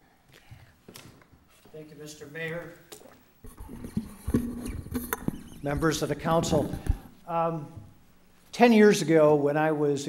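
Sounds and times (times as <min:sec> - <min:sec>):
microphone handling noise: 0:03.4 - 0:08.0.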